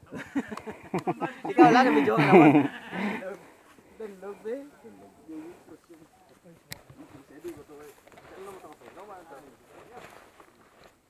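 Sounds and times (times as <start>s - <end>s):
man laughing loudly: 0.0s - 3.2s.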